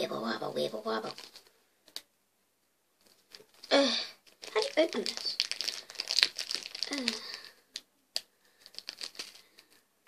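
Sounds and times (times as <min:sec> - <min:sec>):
plastic bag crinkling: 0:00.8 - 0:02.0, 0:03.0 - 0:09.9.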